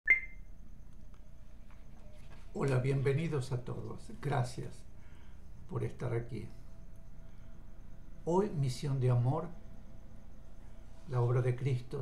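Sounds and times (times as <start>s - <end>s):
short high electronic beep: 0.0s - 0.4s
faint room hum: 0.1s - 12.0s.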